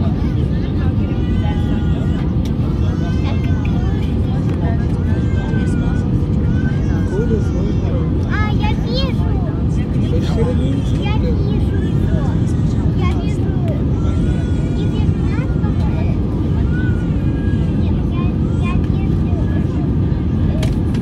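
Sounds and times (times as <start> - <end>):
airplane cabin engine noise: 0.0 - 21.0
passengers talking indistinctly: 0.0 - 21.0.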